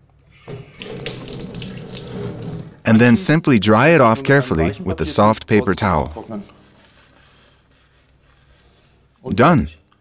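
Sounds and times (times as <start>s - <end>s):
tap water running into metal sink: 0.4s - 2.8s.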